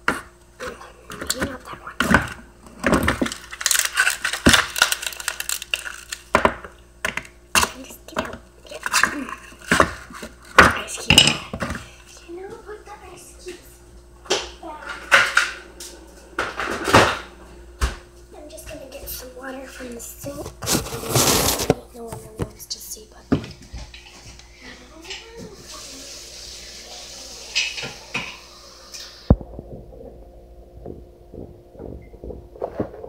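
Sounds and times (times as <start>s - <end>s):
ice cubes cracking in plastic tray: 1.2s - 10.1s.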